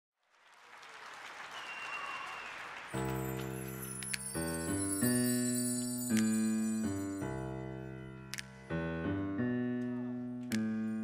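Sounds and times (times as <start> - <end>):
audience applause: 0.2 - 4.0.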